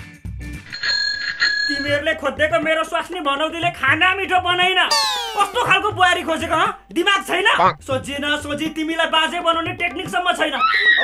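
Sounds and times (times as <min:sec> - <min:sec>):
person singing: 0:04.9 - 0:05.7
bright bell ding: 0:04.9 - 0:05.8.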